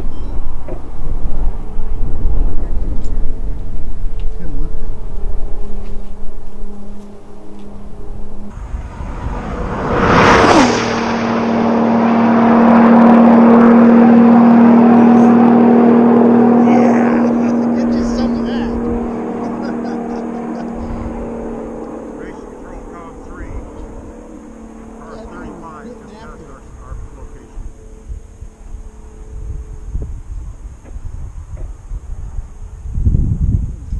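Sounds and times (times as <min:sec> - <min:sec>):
race car passing at high speed: 0:00.0 - 0:32.9
wind rumbling on microphone: 0:00.0 - 0:33.9.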